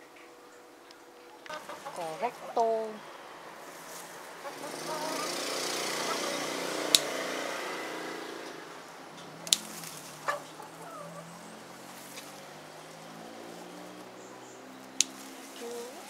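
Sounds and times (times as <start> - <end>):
passing engine drone: 1.7 - 16.0
scissors snipping stems: 6.9 - 7.1, 9.2 - 10.5, 14.8 - 16.0.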